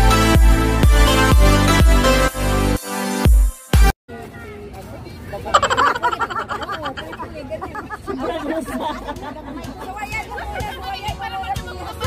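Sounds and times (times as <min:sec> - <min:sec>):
women laughing and shrieking: 0:05.5 - 0:12.0.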